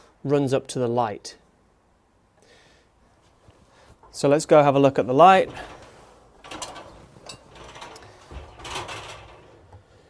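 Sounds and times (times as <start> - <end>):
faint rustling and knocks: 5.4 - 10.0.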